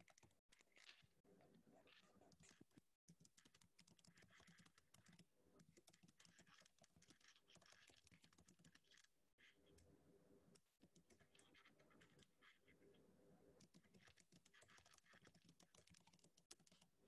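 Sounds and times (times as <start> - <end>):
faint keyboard typing: 0.0 - 1.1, 1.8 - 9.9, 10.5 - 12.7, 13.6 - 17.0.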